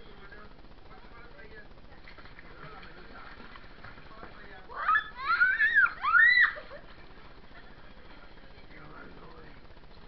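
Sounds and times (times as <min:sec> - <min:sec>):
child squealing: 0:04.8 - 0:06.6.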